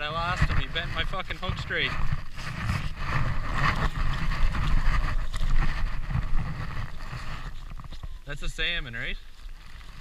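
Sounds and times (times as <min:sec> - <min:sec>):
wind buffeting microphone: 0:00.0 - 0:09.1.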